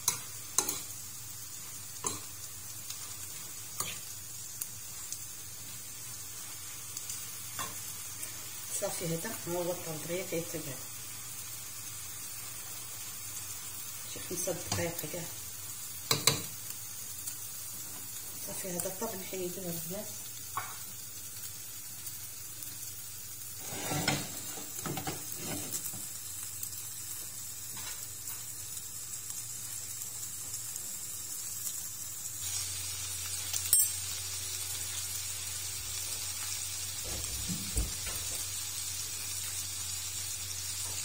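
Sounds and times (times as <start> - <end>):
fish sizzling in a grill pan: 0.0 - 41.0.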